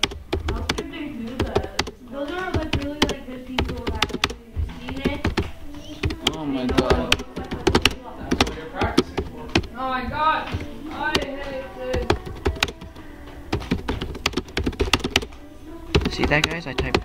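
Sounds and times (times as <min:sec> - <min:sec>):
computer keyboard typing: 0:00.0 - 0:09.8, 0:10.4 - 0:17.0.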